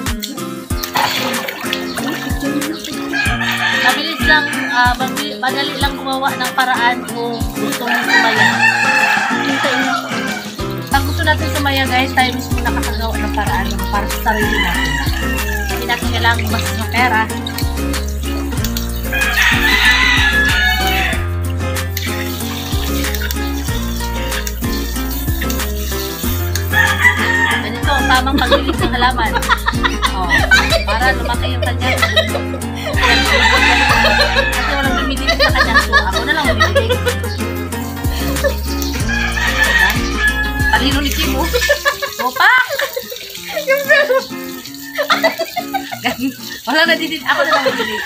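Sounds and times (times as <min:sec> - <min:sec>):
rooster crowing: 0:03.1 - 0:04.9, 0:07.8 - 0:10.6, 0:14.4 - 0:15.8, 0:19.1 - 0:21.3, 0:26.6 - 0:28.2, 0:32.9 - 0:35.4, 0:39.0 - 0:40.8, 0:44.6 - 0:45.8, 0:47.4 - 0:48.0
background music with bass beat: 0:08.5 - 0:41.7.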